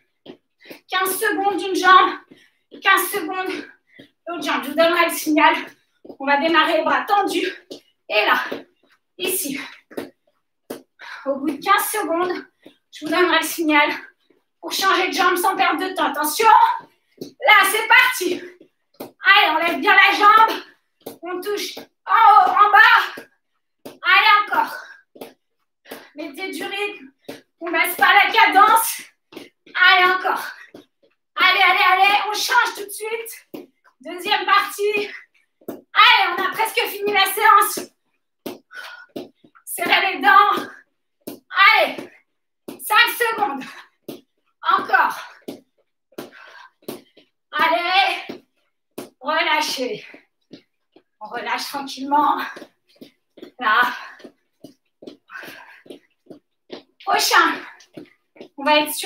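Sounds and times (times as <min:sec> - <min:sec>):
woman breathing hard: 0:46.2 - 0:47.2, 0:55.2 - 0:56.2.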